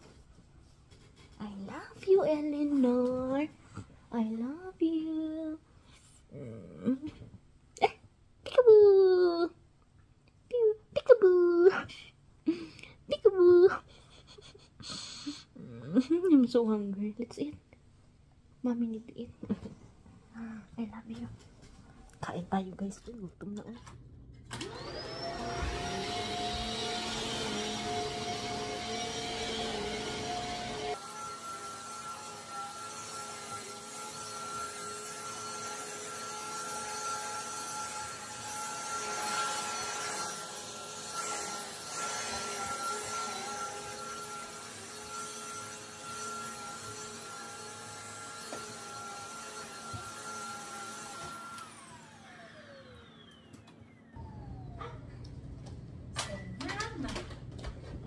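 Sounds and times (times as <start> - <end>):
upright vacuum cleaner running: 24.5 - 55.5.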